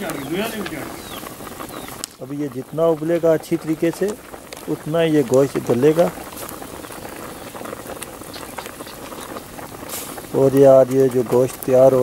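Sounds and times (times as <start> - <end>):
water boiling in a pot: 0.0 - 12.0.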